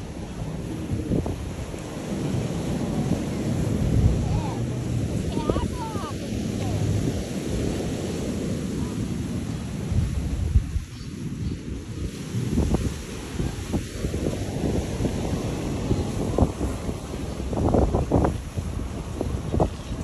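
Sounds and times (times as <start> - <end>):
small waves breaking on beach: 0.0 - 20.0
wind buffeting microphone: 0.0 - 20.0.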